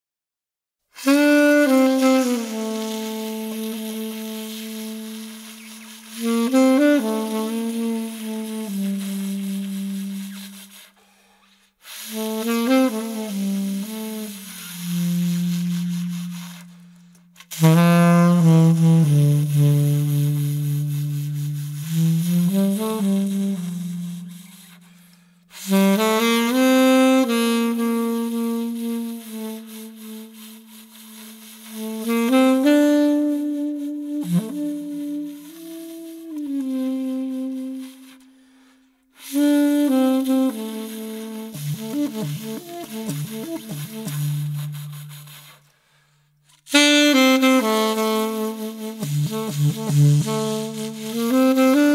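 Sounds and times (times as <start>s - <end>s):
solo saxophone melody: 1.0s - 51.9s.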